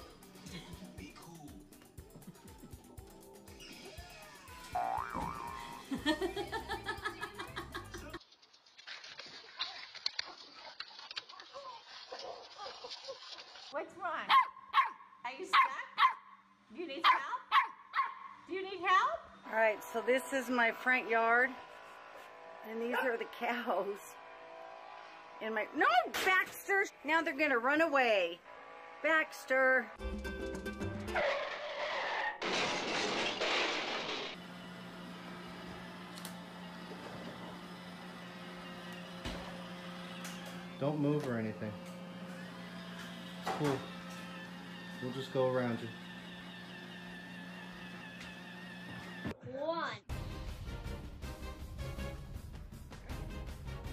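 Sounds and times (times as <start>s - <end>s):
dog barking: 14.3s - 16.4s, 17.0s - 18.4s.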